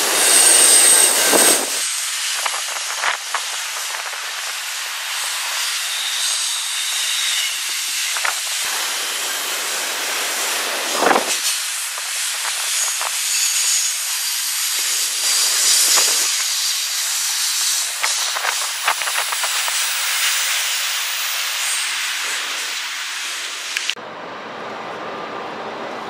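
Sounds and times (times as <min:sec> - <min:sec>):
train wheels hissing on rails: 0:00.0 - 0:24.0
steady background noise: 0:22.4 - 0:26.0.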